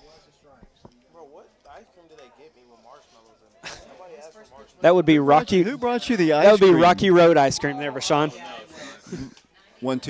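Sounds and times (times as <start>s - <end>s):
faint background voices talking: 0.0s - 10.0s.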